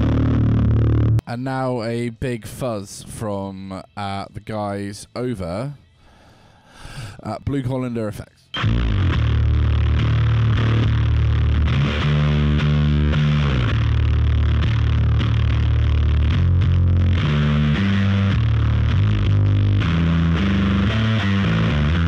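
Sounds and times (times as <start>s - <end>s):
distorted electric bass riff: 0.0s - 1.4s, 8.5s - 22.0s.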